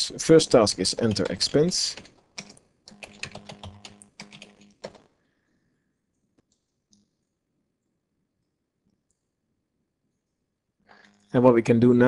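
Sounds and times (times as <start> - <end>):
typing on computer keyboard: 0.8 - 5.1.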